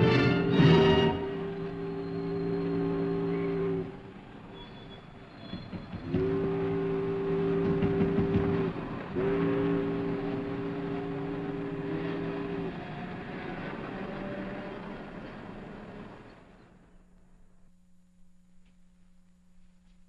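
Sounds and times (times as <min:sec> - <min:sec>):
deep horn blasts: 0:00.0 - 0:04.2, 0:06.0 - 0:15.2
steady background hum: 0:00.0 - 0:20.0.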